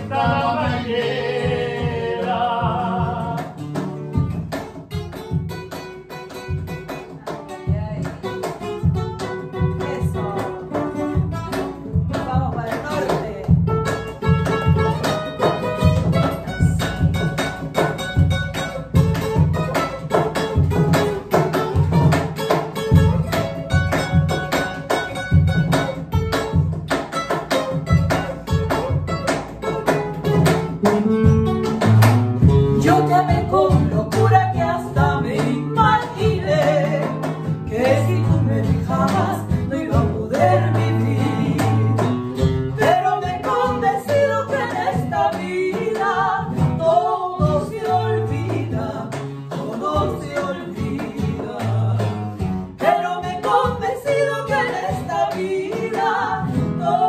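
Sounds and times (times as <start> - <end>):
cajon drum beating: 0.0 - 57.0
classical guitar playing: 0.0 - 57.0.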